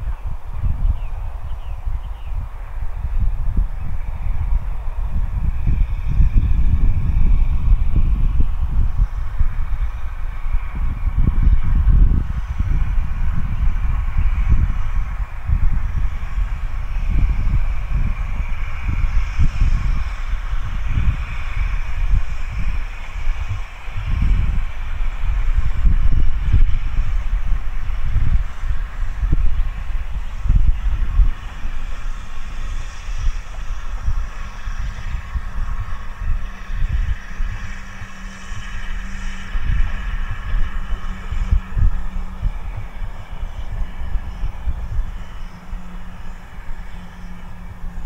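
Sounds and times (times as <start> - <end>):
distant steam locomotive: 0.0 - 48.0
wind buffeting microphone: 0.0 - 48.0.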